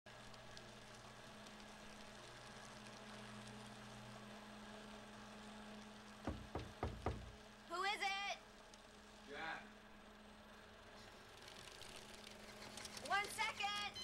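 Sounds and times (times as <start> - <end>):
quick knocks: 6.2 - 7.4.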